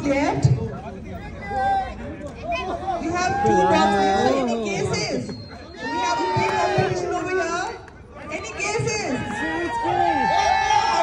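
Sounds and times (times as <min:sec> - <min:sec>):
indistinct crowd chatter: 0:00.0 - 0:11.0.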